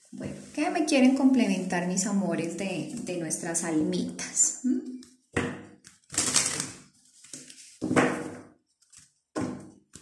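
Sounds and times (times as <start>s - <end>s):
cards being shuffled: 5.0s - 8.0s, 8.8s - 9.2s.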